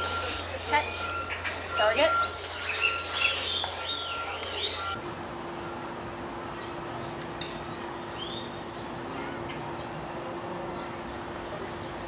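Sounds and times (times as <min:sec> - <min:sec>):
birds chirping and whistling: 0:00.0 - 0:05.0, 0:06.5 - 0:12.0
steady low hum: 0:00.0 - 0:12.0.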